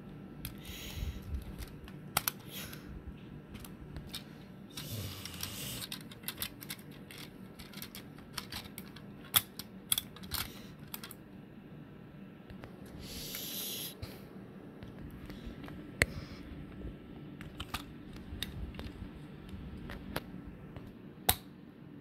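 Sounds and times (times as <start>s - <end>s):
plastic toy parts clicking: 1.4s - 2.5s, 4.8s - 11.2s.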